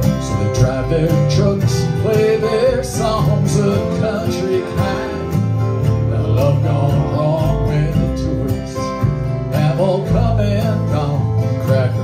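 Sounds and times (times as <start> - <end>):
electric guitar: 0.0 - 12.0
strummed acoustic guitars: 0.0 - 12.0
upright bass: 0.0 - 12.0.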